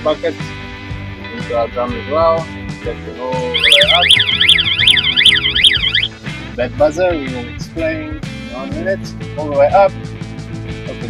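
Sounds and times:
warbling warning buzzer: 0:03.6 - 0:06.1.

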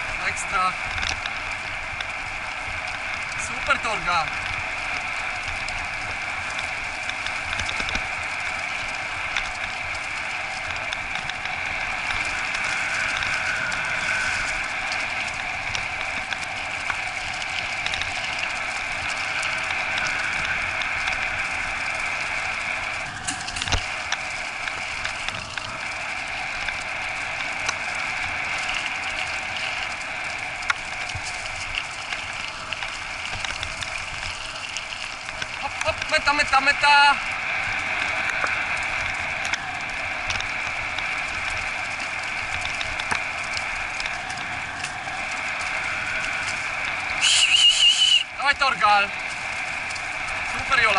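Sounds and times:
dog rig rolling over dirt trail: 0:00.0 - 0:50.9.

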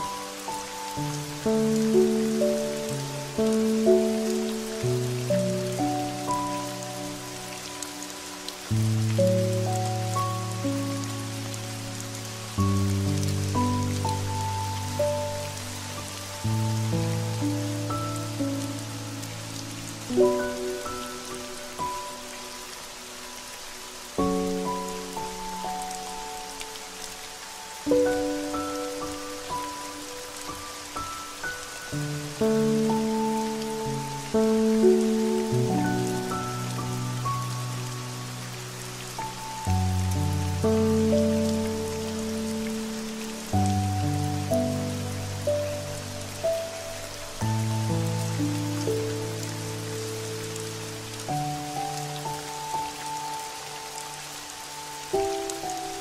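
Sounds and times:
steady rain falling: 0:00.0 - 0:56.0.

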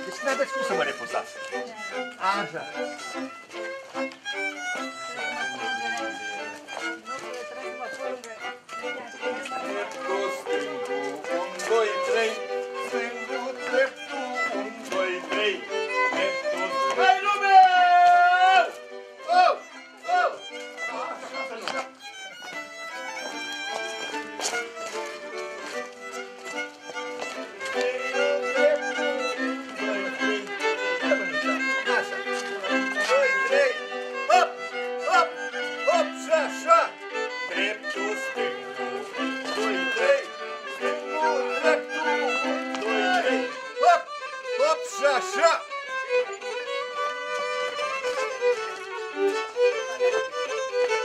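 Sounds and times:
violin playing folk dance tune: 0:00.0 - 0:51.0.

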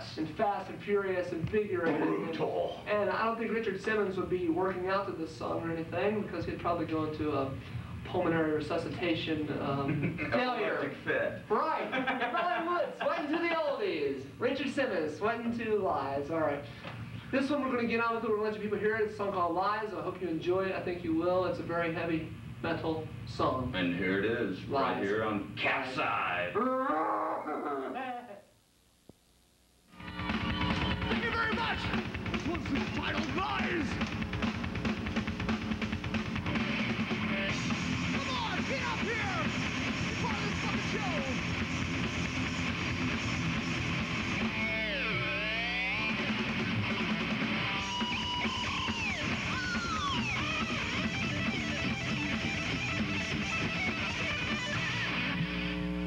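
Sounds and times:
heavy metal band playing live: 0:30.2 - 0:55.7
man yelling: 0:38.2 - 0:39.6, 0:40.2 - 0:41.4.

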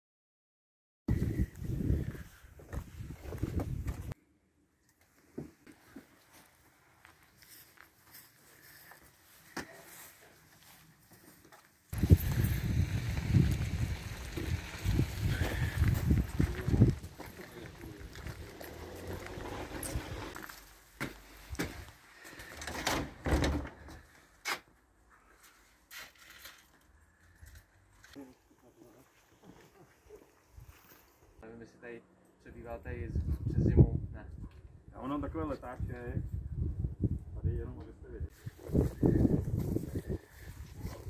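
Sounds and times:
footsteps on grass: 0:05.8 - 0:22.0.

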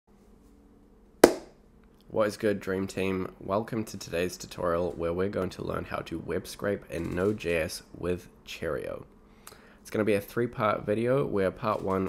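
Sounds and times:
faint room hum: 0:00.1 - 0:12.0
sharp impact: 0:01.2 - 0:01.5.

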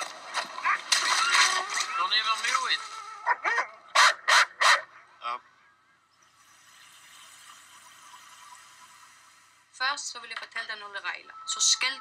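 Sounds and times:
dogs barking: 0:00.3 - 0:01.2, 0:03.2 - 0:05.2
falling dog cry: 0:02.8 - 0:05.0
faint steady hiss: 0:05.2 - 0:11.2.

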